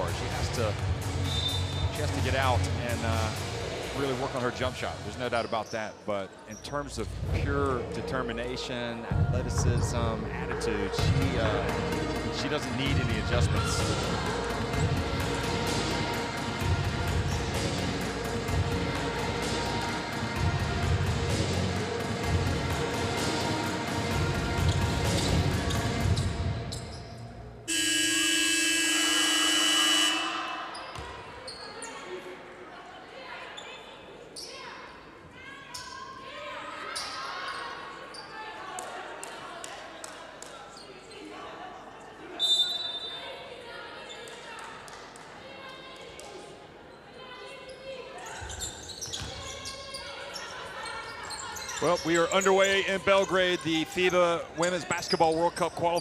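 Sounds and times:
voices in large hall: 0.0 - 56.0
short high whistle: 1.3 - 1.8
arena game horn: 27.7 - 30.6.

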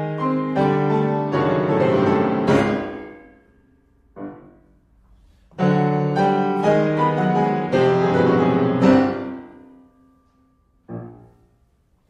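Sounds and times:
loud piano chord: 0.0 - 5.0, 5.6 - 12.0
chamber music led by piano: 0.0 - 12.0.

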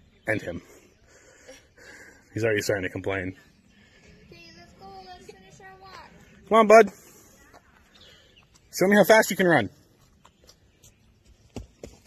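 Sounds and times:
footsteps on dirt trail: 3.9 - 12.0.

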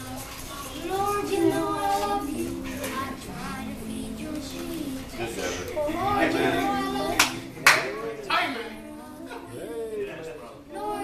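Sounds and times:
hand claps: 7.1 - 8.0.

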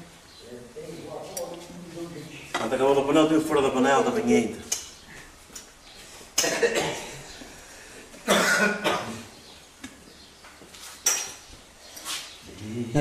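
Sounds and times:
man coughing: 6.4 - 7.3, 8.2 - 9.3.

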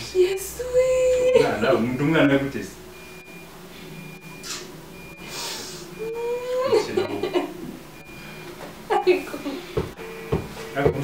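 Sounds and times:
person breathing: 5.2 - 6.0, 8.0 - 8.6.

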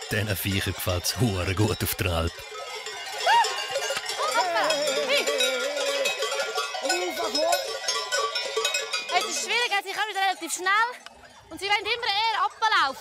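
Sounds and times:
cowbells clanking: 0.0 - 13.0
herders shouting calls: 3.1 - 7.8.

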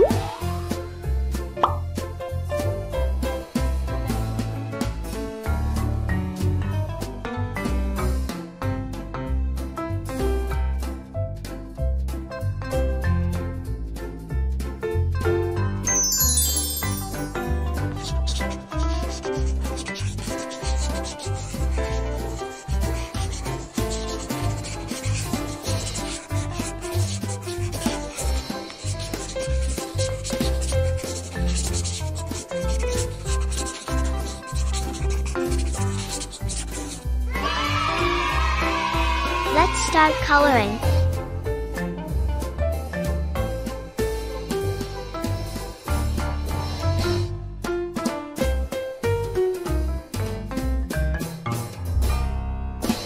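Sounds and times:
rising plop sound effect: 0.0 - 0.5, 1.6 - 1.8, 15.9 - 17.3
upbeat background music: 0.0 - 53.0
marker drawing on paper: 16.0 - 37.5, 39.6 - 41.1, 44.1 - 47.3.

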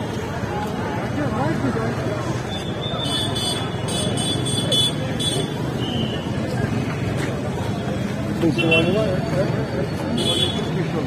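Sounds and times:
passing cars: 0.0 - 11.0
voices of crowd: 0.0 - 11.0.

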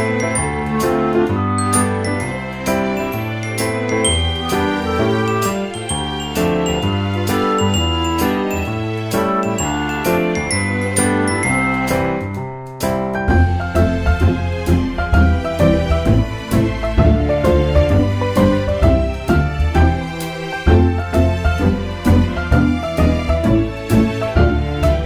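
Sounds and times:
bell-like chiming notes: 0.0 - 12.9.

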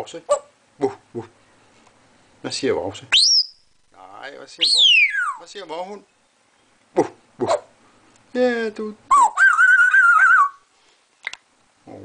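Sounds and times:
parrot whistling call: 3.1 - 3.6, 4.6 - 5.5, 9.1 - 10.7.

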